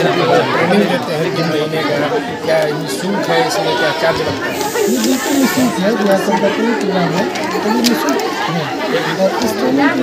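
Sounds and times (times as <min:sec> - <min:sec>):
overlapping voices chattering: 0:00.0 - 0:10.0.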